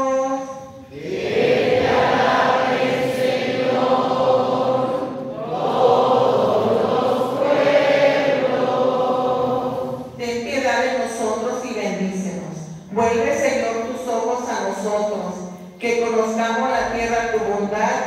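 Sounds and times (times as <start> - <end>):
congregation singing: 0.7 - 10.2.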